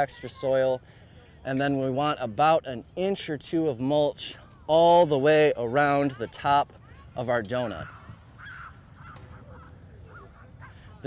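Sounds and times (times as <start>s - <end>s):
outdoor background noise: 0.0s - 11.0s
distant bird calls: 6.8s - 11.0s.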